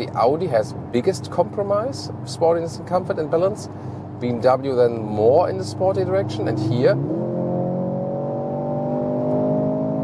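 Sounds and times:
car engine accelerating hard: 0:05.8 - 0:10.0.

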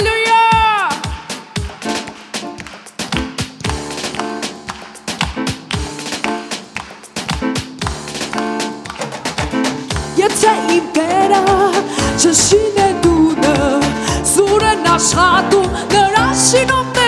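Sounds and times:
quick percussive beat: 0:00.0 - 0:16.8
keyboard chords: 0:01.1 - 0:17.0
hands clapping along: 0:01.6 - 0:10.2.

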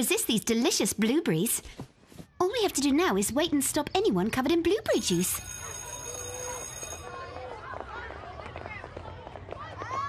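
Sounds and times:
children chattering: 0:05.2 - 0:10.0.

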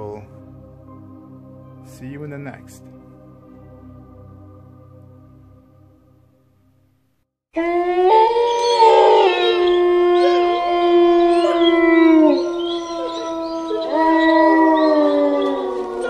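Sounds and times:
wolves howling: 0:07.6 - 0:16.0.

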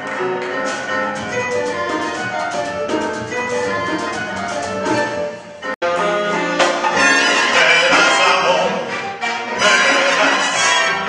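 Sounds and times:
drum kit: 0:00.0 - 0:10.2
piano chords: 0:00.0 - 0:11.0
horns sustaining chords: 0:00.4 - 0:11.0
hand drums beat: 0:00.7 - 0:05.3.

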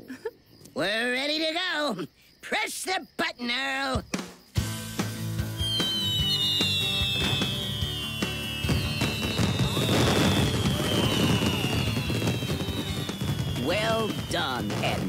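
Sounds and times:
background music: 0:04.6 - 0:13.6
cartoon fireworks crackling: 0:04.6 - 0:15.0
falling whistle-like tone: 0:05.4 - 0:15.0.

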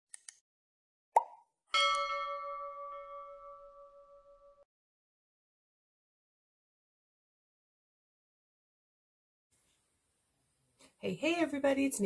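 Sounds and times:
cartoon pop: 0:01.2 - 0:01.5
bell ding: 0:01.7 - 0:04.7.

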